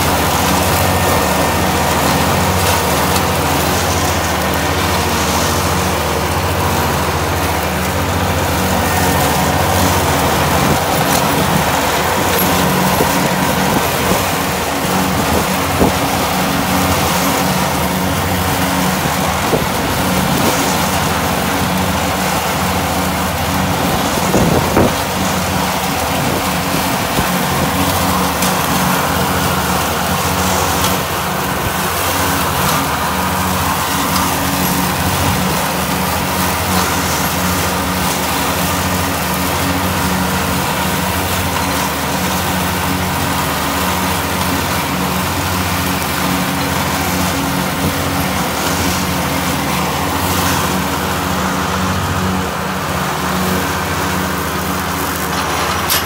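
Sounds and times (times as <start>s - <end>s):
diesel tractor engine running: 0.0s - 56.0s.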